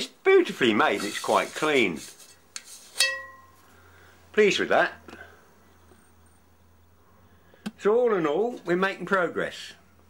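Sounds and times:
sharp metallic clink: 3.0s - 3.6s.

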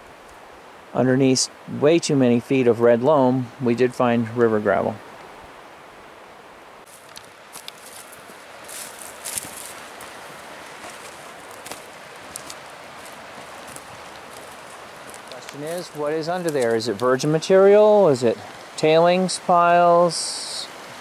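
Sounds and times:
outdoor hiss: 0.0s - 21.0s
rustling through dry brush: 6.8s - 17.3s.

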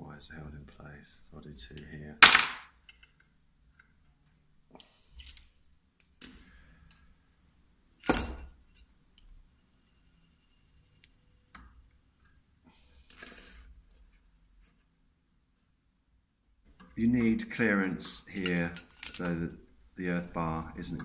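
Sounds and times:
wire clicks and rustles: 5.1s - 7.1s, 18.0s - 20.0s.

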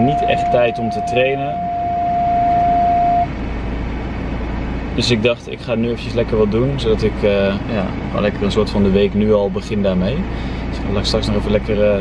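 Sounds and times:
steady single-pitched tone: 0.0s - 3.4s
car engine rumble: 0.0s - 12.0s.

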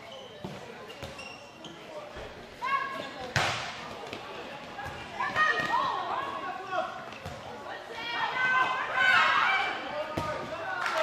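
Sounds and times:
shoe squeaks: 0.0s - 2.0s
players' voices: 0.0s - 11.0s
ball bouncing on court floor: 7.1s - 7.5s, 10.1s - 10.5s.

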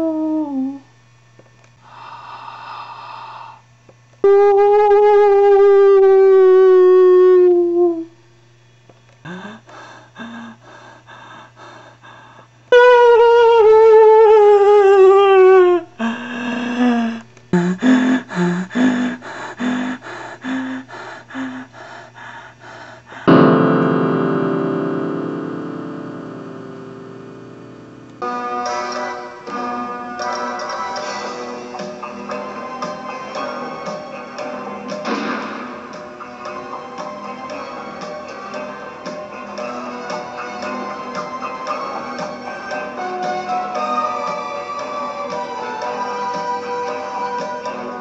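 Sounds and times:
breathy hissing rush: 1.8s - 3.7s, 9.2s - 12.7s, 16.0s - 28.0s
low hum: 14.6s - 28.2s
droning note: 23.3s - 28.3s.

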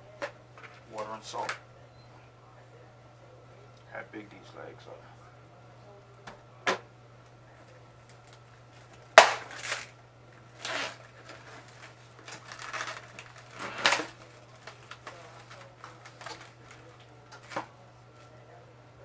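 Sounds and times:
plastic wrap crinkling: 8.0s - 17.7s.

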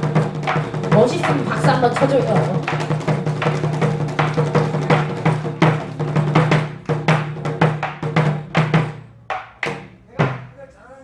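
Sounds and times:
barrel drums struck with sticks: 0.0s - 10.7s.

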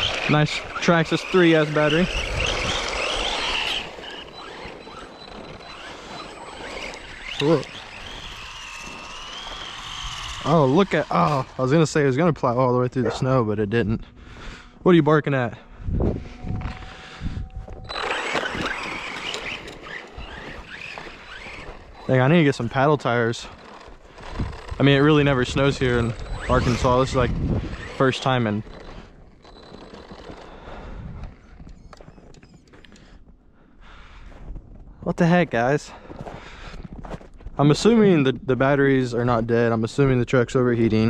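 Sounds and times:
electric motor whining: 0.0s - 33.2s
tyres churning through snow: 0.0s - 41.0s.

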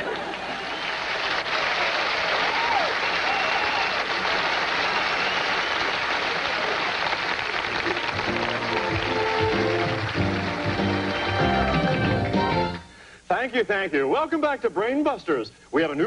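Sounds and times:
studio audience applauding: 0.0s - 12.8s
game show music: 7.6s - 13.1s.

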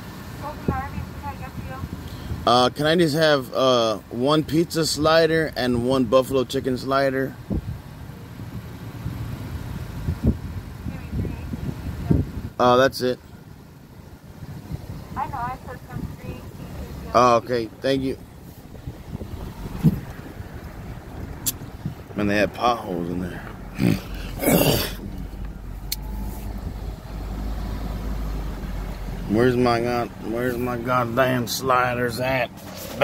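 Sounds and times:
car engine idling: 0.0s - 33.0s.

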